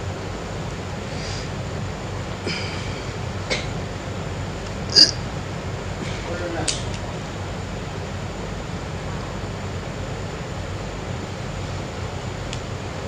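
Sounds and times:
recording hiss and hum: 0:00.0 - 0:13.0.

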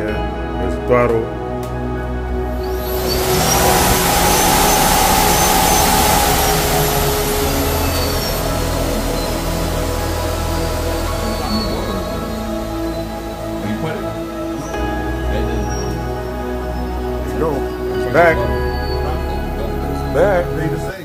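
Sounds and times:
background music: 0:00.0 - 0:21.0
electric hub motor whining: 0:02.5 - 0:15.1.

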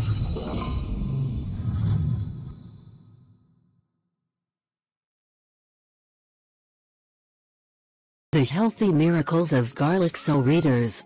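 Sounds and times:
bright high ringing chime: 0:00.0 - 0:01.2
deep low music bed: 0:00.0 - 0:03.0.

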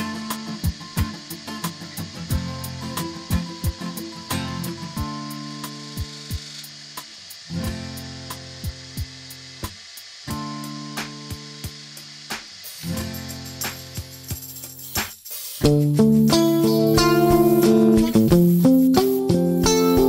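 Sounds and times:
background music with sustained chords: 0:15.6 - 0:20.0.

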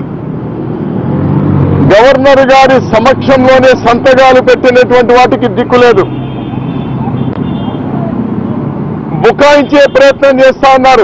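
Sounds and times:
man speaking: 0:01.9 - 0:06.1, 0:09.1 - 0:11.0.

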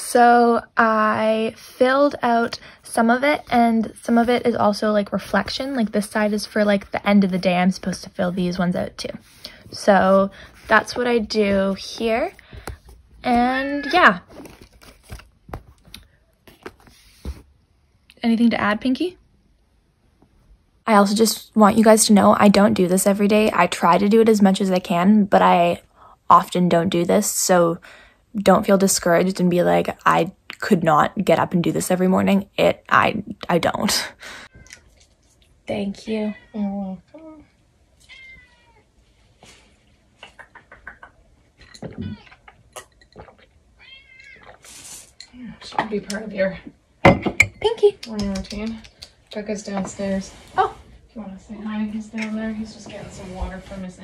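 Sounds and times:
cat meowing: 0:38.0 - 0:38.8, 0:43.8 - 0:44.6
breathy hiss: 0:44.6 - 0:45.2.

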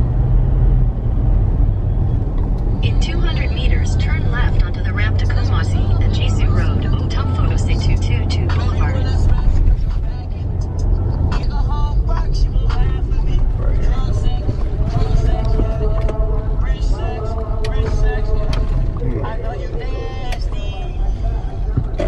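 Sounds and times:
car engine and road noise: 0:00.0 - 0:22.0.

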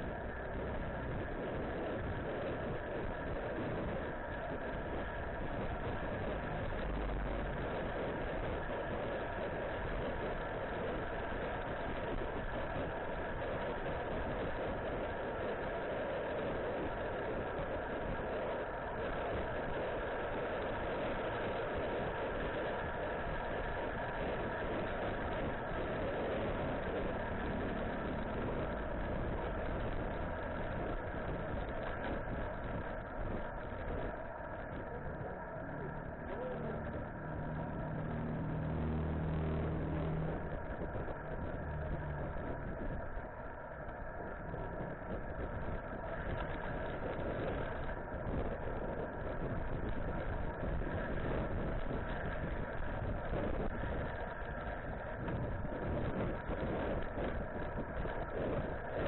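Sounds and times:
vehicle engine humming: 0:00.0 - 0:14.1, 0:18.2 - 0:48.3
wind rushing over microphone: 0:00.0 - 0:59.0.

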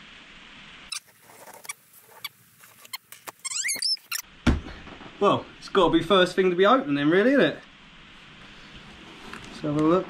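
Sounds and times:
squeaky screech: 0:02.9 - 0:04.2
loud dull thump: 0:04.4 - 0:05.4.

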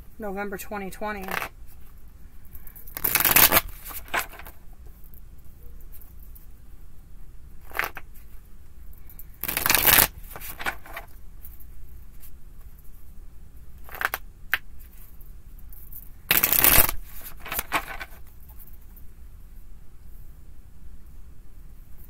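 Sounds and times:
cards shuffled by hand: 0:01.2 - 0:01.9, 0:02.8 - 0:04.6, 0:07.6 - 0:08.3, 0:09.3 - 0:12.3, 0:13.8 - 0:15.1, 0:16.3 - 0:18.8.

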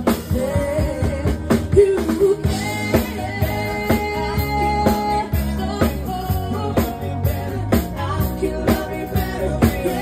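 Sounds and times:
drum kit beating: 0:00.0 - 0:10.0
live rock band playing: 0:00.0 - 0:10.0
woman singing: 0:00.0 - 0:10.0.

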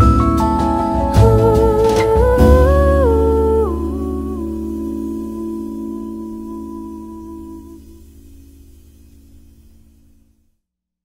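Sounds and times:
jazz ballad music: 0:00.0 - 0:10.4
woman humming: 0:01.2 - 0:08.1.

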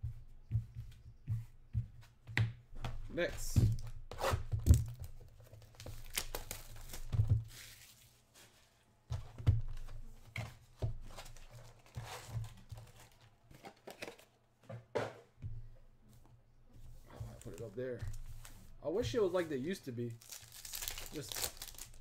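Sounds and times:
plastic wrap tearing and crinkling: 0:05.7 - 0:08.0, 0:20.2 - 0:22.0.

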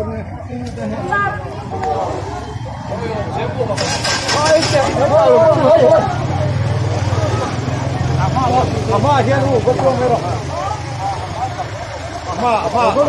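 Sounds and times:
people's voices: 0:00.0 - 0:13.0.

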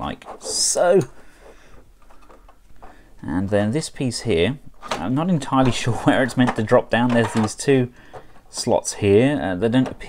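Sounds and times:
plastic parts rubbing and clicking: 0:00.0 - 0:03.0, 0:04.8 - 0:10.0.

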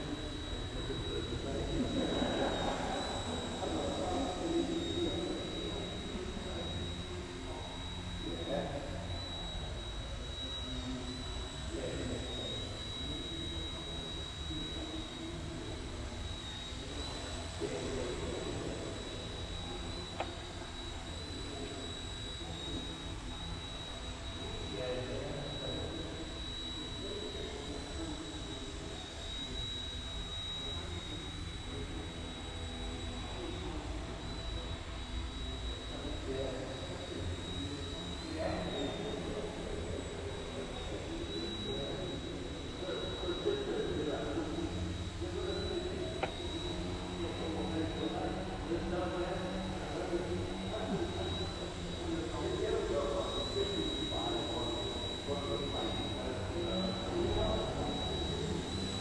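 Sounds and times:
high-pitched motor whine: 0:00.0 - 0:59.0
low rotor hum: 0:00.0 - 0:59.0.

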